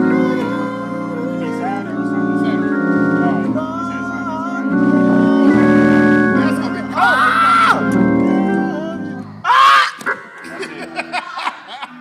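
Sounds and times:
gospel organ chords: 0.0 - 12.0.

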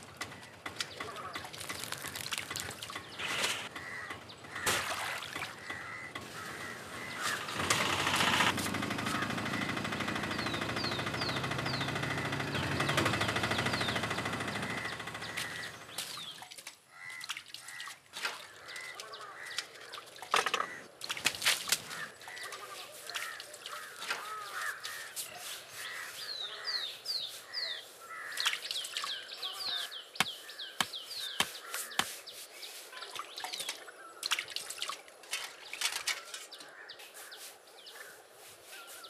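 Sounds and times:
birds calling: 0.0 - 34.5, 35.1 - 39.0.

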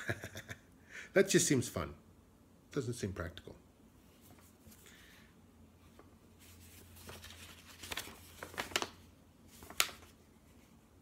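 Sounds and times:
magazine pages rustling: 4.1 - 5.1, 5.8 - 10.7
paper crinkling: 5.9 - 10.7.

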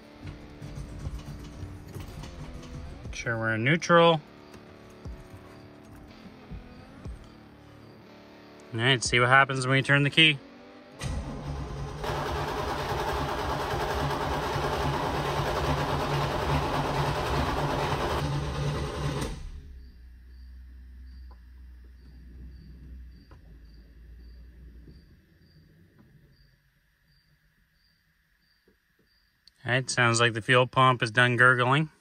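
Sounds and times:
engine starter cranking: 0.0 - 3.2, 11.0 - 20.1
electric fuel pump humming: 11.0 - 25.1.

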